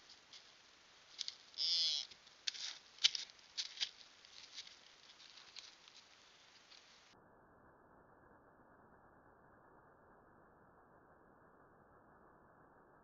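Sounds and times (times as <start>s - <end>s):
footsteps rustling dry leaves: 0.0s - 7.0s.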